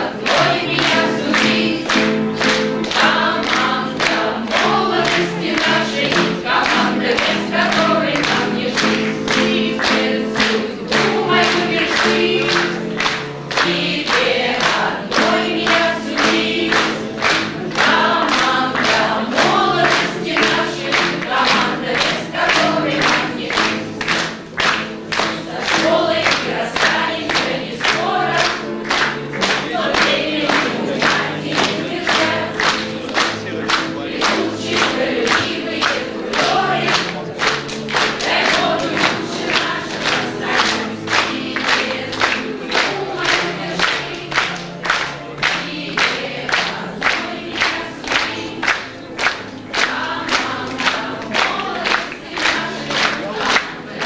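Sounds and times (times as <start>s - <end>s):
crowd clapping in time: 0.0s - 54.0s
group singing: 0.0s - 54.0s
musical accompaniment: 0.0s - 54.0s.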